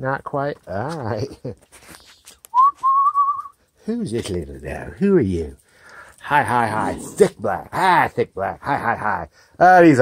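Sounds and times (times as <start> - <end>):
person whistling: 2.5 - 3.6.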